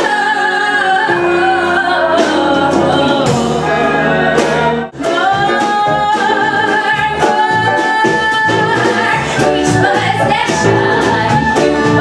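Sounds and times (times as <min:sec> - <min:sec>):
woman singing with vibrato: 0:00.0 - 0:04.0, 0:05.0 - 0:12.0
live band playing: 0:00.0 - 0:12.0.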